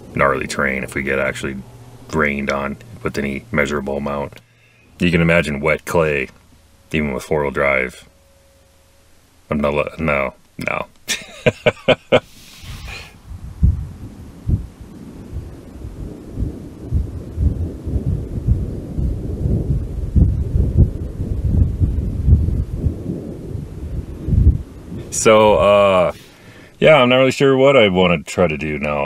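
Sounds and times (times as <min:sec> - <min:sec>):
storm wind buffeting microphone: 0:12.7 - 0:27.3.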